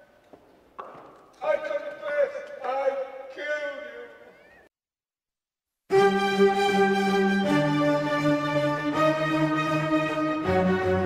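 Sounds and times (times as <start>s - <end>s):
man calling out: 1.4s - 4.6s.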